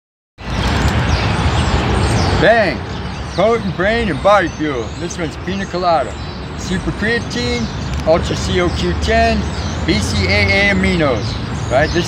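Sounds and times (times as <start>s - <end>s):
street noise with low rumble: 0.4s - 12.0s.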